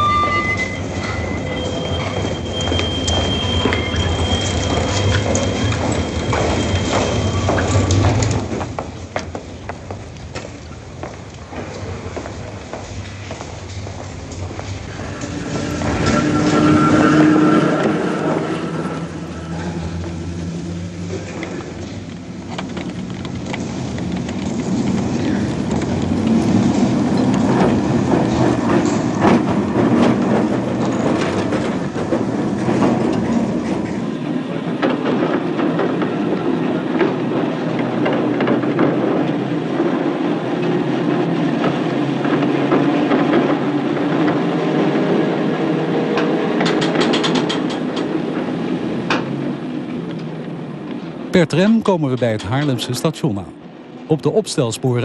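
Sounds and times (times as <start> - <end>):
wheels clicking on rails: 0.0 - 53.0
rail vehicle rumbling: 0.0 - 55.0.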